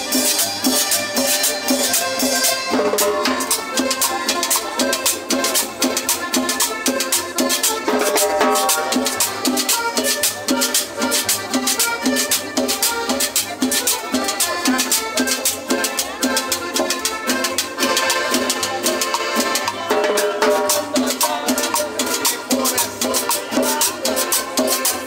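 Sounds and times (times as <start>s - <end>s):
band playing latin dance music: 0.0s - 25.0s
drums on snare and cymbal: 0.0s - 25.0s
guitar: 0.0s - 25.0s
upright bass: 0.0s - 25.0s.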